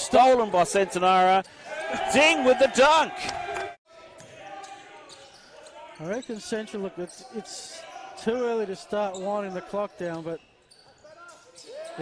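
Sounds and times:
commentator's voice: 2.0 - 3.3.

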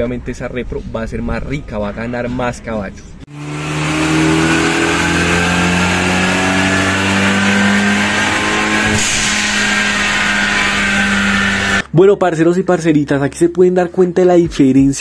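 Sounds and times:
car engine pulling under load: 3.3 - 11.8.

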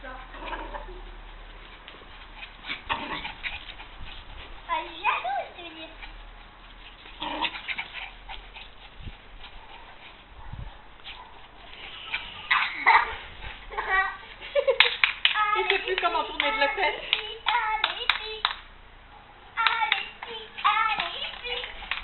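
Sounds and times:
small dogs yelping: 0.3 - 4.6, 5.9 - 13.9.

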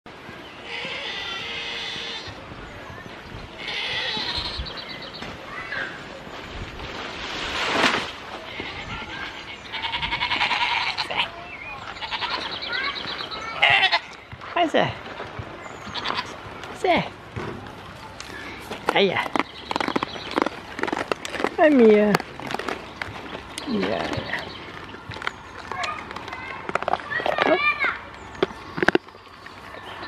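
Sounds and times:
goats bleating: 3.6 - 4.7, 8.4 - 12.6, 13.6 - 14.2, 15.8 - 16.4.

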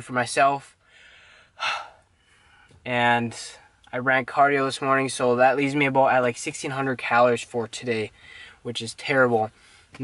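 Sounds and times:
man talking: 0.0 - 0.8, 2.8 - 10.0
man gasping breath: 0.8 - 2.8, 8.2 - 8.6, 9.6 - 10.0.

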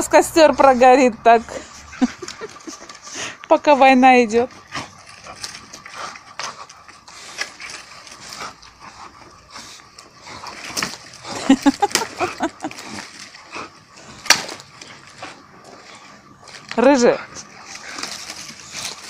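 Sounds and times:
twigs rustling and scraping: 0.0 - 19.0
sharp branch crack: 10.5 - 13.1, 14.2 - 14.9.

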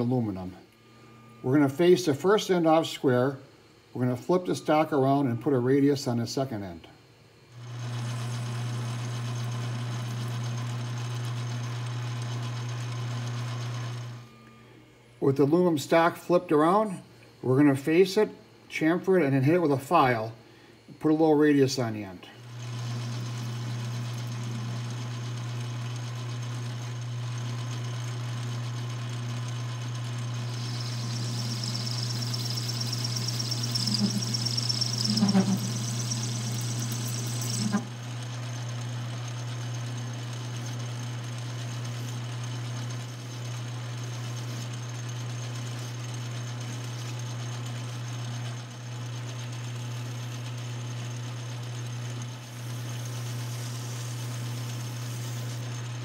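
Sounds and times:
lathe motor hum: 7.6 - 14.3, 22.4 - 56.0
metal cutting hiss with rattles: 30.6 - 37.9.

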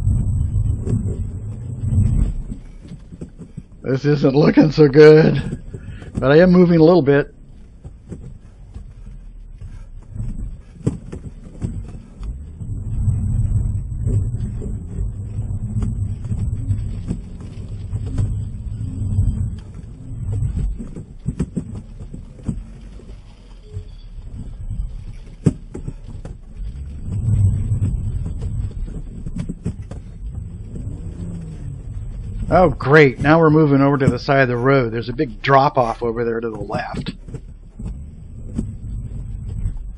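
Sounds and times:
car engine and tyres in snow: 0.0 - 39.9.

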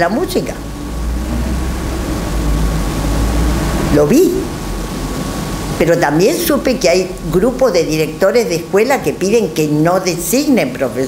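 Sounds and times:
low steady rumble: 0.0 - 10.5.

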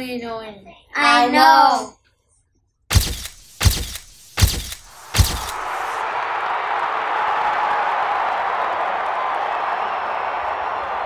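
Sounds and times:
crowd applause: 5.5 - 11.0.

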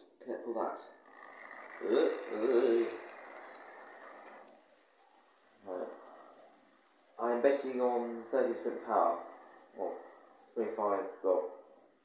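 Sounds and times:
model train motor whirring: 0.9 - 10.6
train wheels running on track: 1.1 - 6.2.

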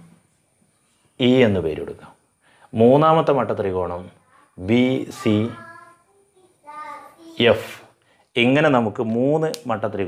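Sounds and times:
man speaking: 1.2 - 5.7, 7.4 - 10.0.

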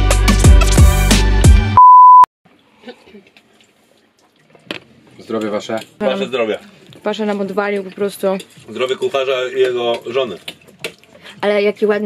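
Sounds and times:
background music with a beat: 0.0 - 1.8
high bleep tone: 1.8 - 2.3.

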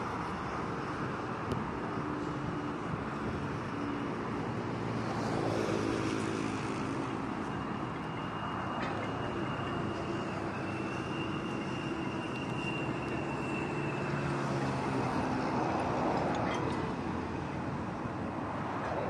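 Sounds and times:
road traffic rumble: 0.0 - 19.0.

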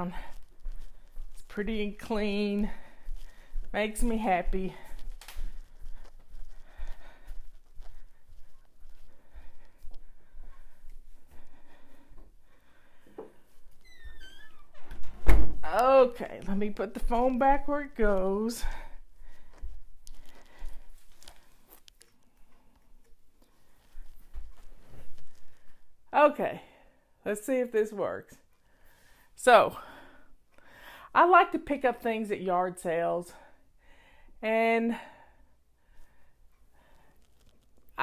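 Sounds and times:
faint breathing: 2.6 - 3.8, 4.7 - 13.8, 18.6 - 26.0, 28.6 - 31.2, 33.3 - 37.4
soft thumps from walking: 13.0 - 15.6.

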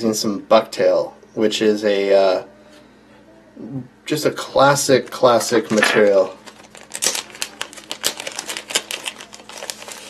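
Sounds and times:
plastic packaging crinkling: 5.0 - 10.0.

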